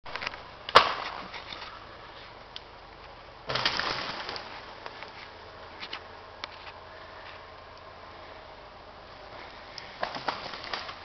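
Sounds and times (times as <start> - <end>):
wood cracking: 0.0 - 1.8, 3.5 - 5.2, 9.8 - 11.0
branches breaking crash: 0.7 - 1.4, 3.5 - 4.9, 10.0 - 11.0.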